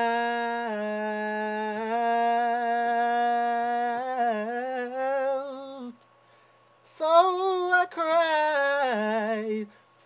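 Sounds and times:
man singing unaccompanied: 0:00.0 - 0:06.0, 0:06.8 - 0:09.8.

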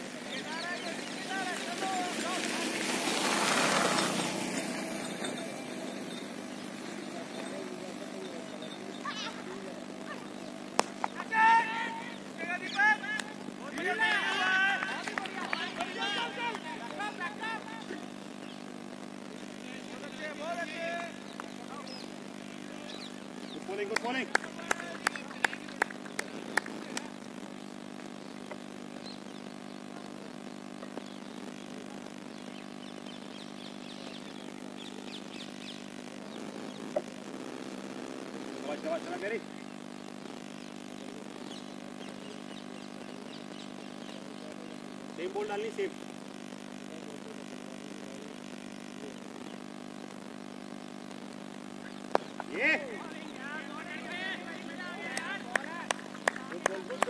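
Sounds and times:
steady low hum: 0:00.0 - 0:57.0
people calling out: 0:05.1 - 0:18.2.

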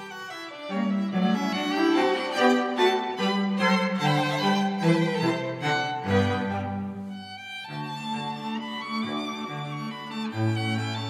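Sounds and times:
violin and cello playing slowly: 0:00.0 - 0:11.0.

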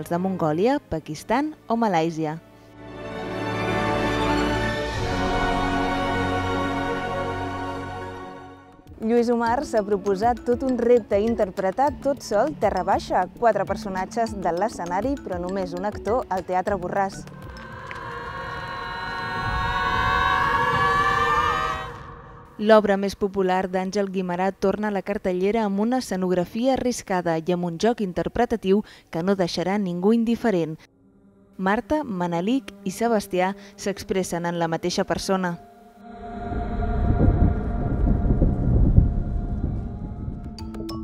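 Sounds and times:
held low notes: 0:08.9 - 0:23.1, 0:31.2 - 0:41.0
deep rumbling swell: 0:16.9 - 0:23.3, 0:30.9 - 0:41.0
long held multi-pitch tone: 0:17.2 - 0:22.8, 0:35.0 - 0:41.0.

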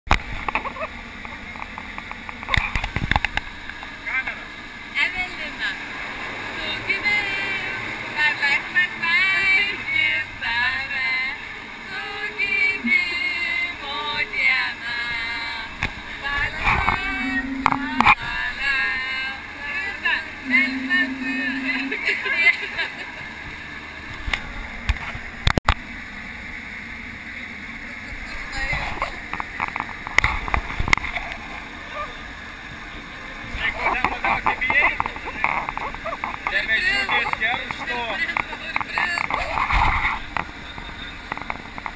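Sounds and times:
airplane cabin drone: 0:15.1 - 0:23.6
people talking and laughing: 0:15.5 - 0:23.5, 0:31.0 - 0:32.3, 0:33.0 - 0:41.2.

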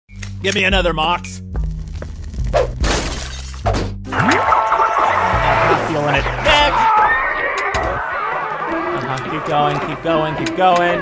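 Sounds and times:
glass shattering: 0:02.8 - 0:04.5.

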